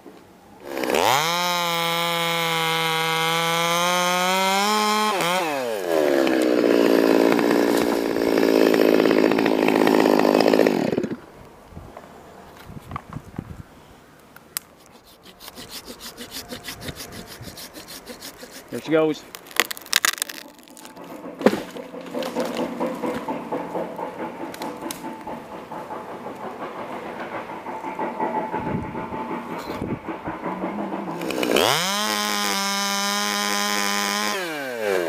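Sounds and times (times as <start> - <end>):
chainsaw cutting at high revs: 0.6 - 11.2, 14.9 - 19.0, 31.1 - 35.0
rustles: 11.4 - 25.6
quiet knocks: 21.0 - 29.4.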